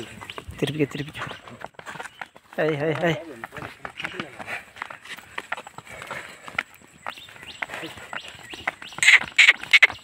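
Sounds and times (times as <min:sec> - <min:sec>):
hooves clopping on asphalt: 0:00.0 - 0:10.0.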